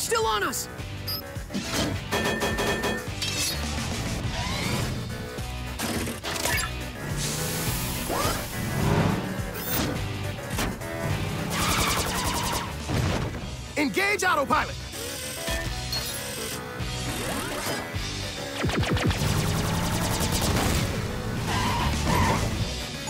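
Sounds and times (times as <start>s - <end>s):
cartoon action music: 1.4s - 23.0s.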